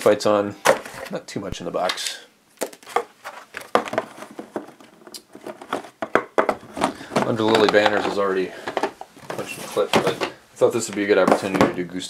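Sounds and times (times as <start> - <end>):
cardboard and paper rustling: 2.6 - 11.8.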